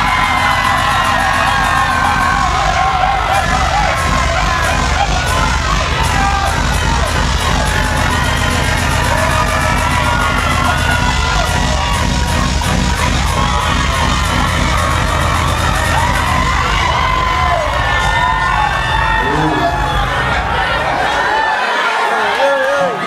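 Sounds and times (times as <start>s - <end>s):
fast ticking beat: 0.0s - 21.1s
crowd cheering and whooping: 0.0s - 23.0s
dancehall music with heavy bass: 0.0s - 23.0s.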